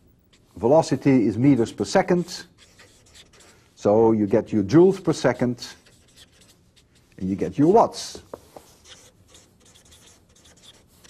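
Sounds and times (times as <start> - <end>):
writing scratching: 0.0 - 11.0.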